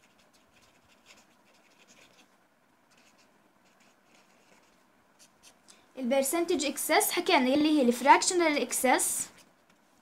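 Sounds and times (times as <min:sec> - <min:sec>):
marker pen scratching on paper: 0:00.0 - 0:05.6.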